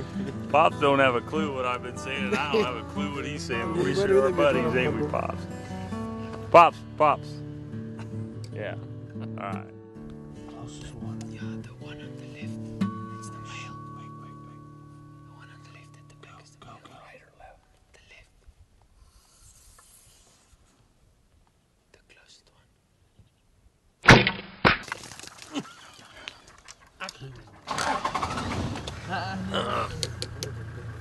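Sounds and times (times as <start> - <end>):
bow shot crack: 24.0 - 25.4
low voices: 29.0 - 31.0.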